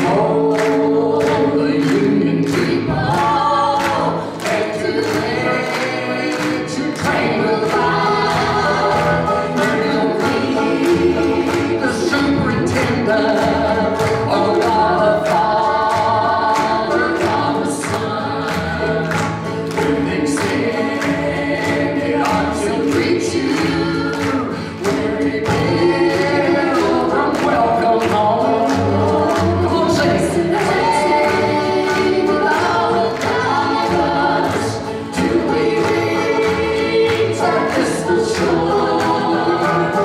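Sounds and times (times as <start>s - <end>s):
acoustic guitar: 0.0s - 40.0s
cello: 0.0s - 40.0s
strummed banjo: 0.0s - 40.0s
voices singing in harmony: 0.0s - 40.0s.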